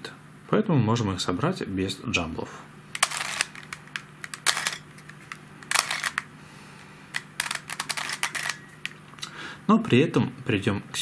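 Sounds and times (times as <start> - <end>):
plastic puzzle pieces clicking: 3.0 - 6.3, 7.2 - 9.0.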